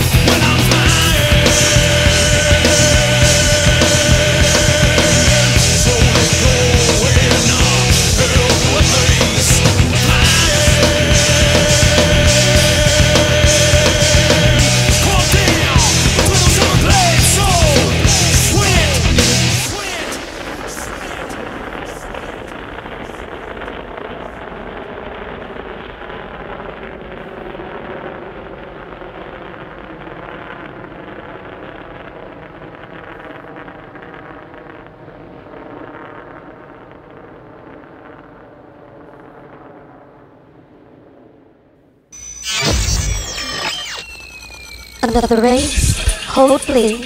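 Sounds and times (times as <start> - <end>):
muffled metal song: 0.0 - 21.8, 42.2 - 47.0
electronic burst with sliding pitches: 42.2 - 47.0.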